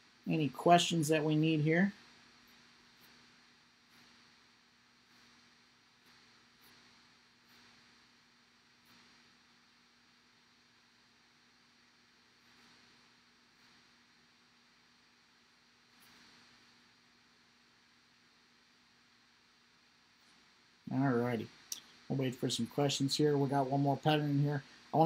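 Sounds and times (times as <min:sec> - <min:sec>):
faint steady hum and hiss: 0:00.0 - 0:25.0.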